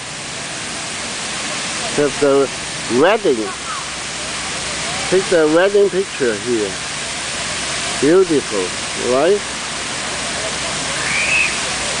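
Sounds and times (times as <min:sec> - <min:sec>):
fountain water rushing and splashing: 0:00.0 - 0:12.0.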